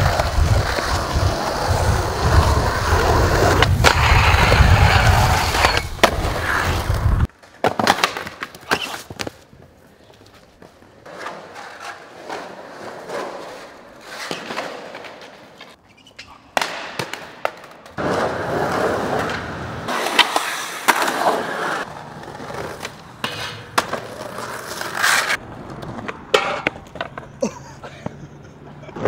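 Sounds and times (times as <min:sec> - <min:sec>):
skateboard wheels rolling on concrete: 0:00.0 - 0:29.0
skateboard clacks: 0:16.6 - 0:27.4.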